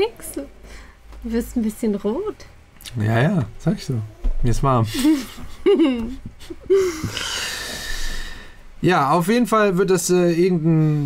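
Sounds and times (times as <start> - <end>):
breathy hissing: 6.8 - 8.7.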